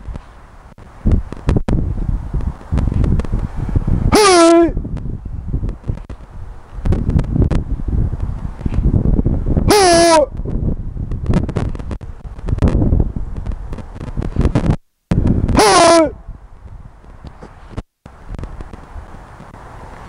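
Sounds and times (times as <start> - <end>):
wind buffeting microphone: 0.0 - 20.0
man shouting: 4.1 - 4.8, 9.7 - 10.3, 15.6 - 16.2.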